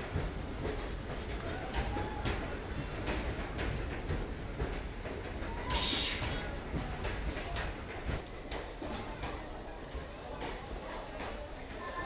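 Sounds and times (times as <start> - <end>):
train wheels clacking on rail joints: 0.0 - 12.0
crowd chatter: 5.4 - 12.0.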